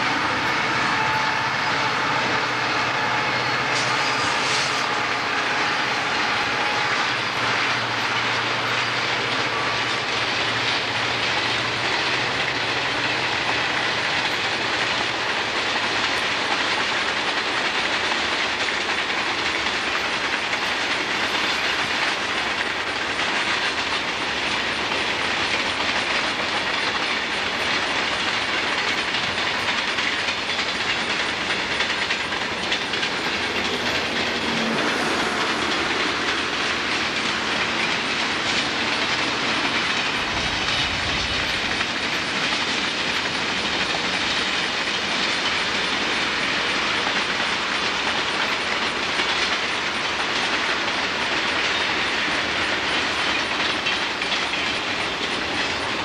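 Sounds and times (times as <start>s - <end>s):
freight train wheels on rails: 0.0s - 56.0s.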